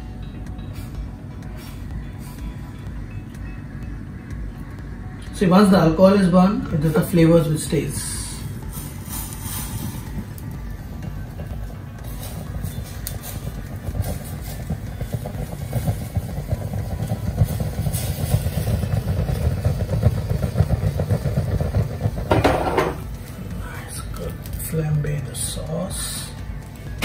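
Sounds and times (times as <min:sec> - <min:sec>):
flame rumbling and crackling: 0:00.0 - 0:27.0.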